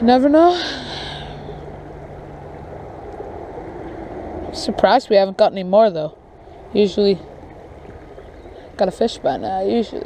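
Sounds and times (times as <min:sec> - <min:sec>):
low even outdoor rush: 0:00.0 - 0:10.0.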